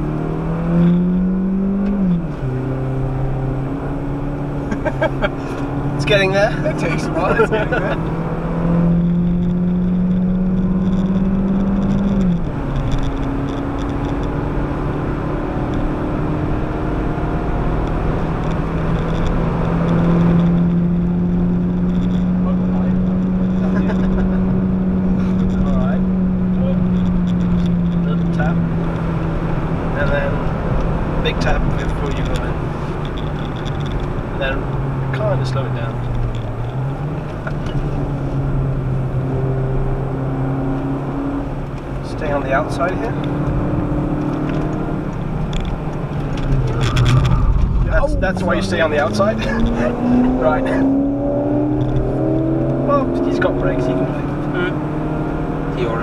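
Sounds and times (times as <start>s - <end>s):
car engine revving: 0.0s - 56.0s
road and tyre noise: 0.0s - 56.0s.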